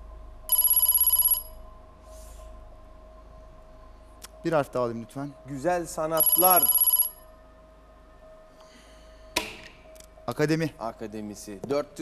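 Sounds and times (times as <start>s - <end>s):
pulsing electronic ringing tone: 0.5s - 1.6s, 6.2s - 7.3s.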